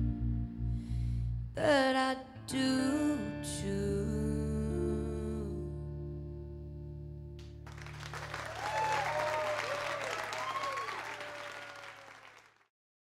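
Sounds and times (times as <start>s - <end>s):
audience applauding and cheering: 7.6s - 12.7s
audience shouts: 8.2s - 12.4s.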